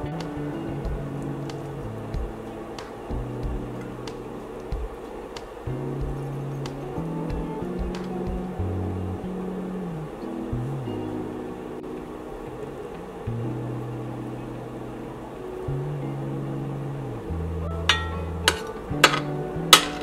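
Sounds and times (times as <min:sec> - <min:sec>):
slow low background music: 0:00.0 - 0:20.0.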